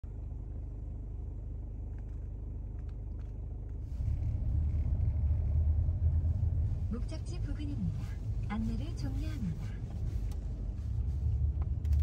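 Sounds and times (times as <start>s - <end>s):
car rumble inside cabin: 0.0s - 12.0s.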